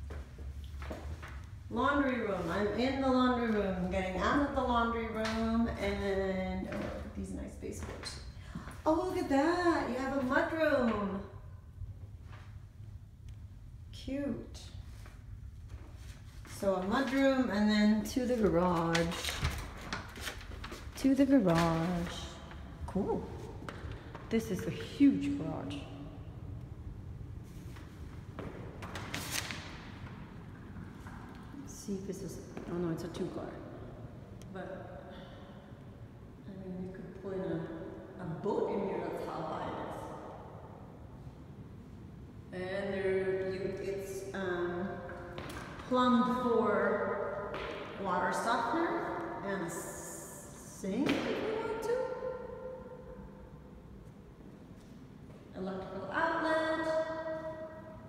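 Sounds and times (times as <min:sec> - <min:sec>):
low steady rumble: 0:00.0 - 0:29.0.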